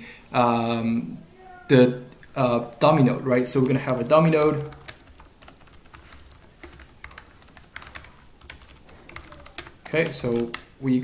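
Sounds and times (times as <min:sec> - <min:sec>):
computer keyboard typing: 0:03.6 - 0:10.7.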